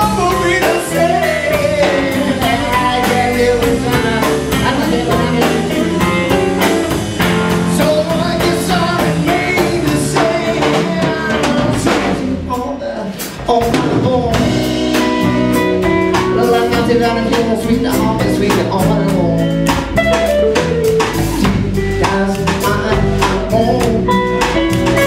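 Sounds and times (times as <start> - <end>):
electric guitar: 0.0 - 12.5, 13.4 - 25.0
drum kit: 0.0 - 25.0
electric bass: 0.0 - 25.0
person singing: 0.0 - 25.0.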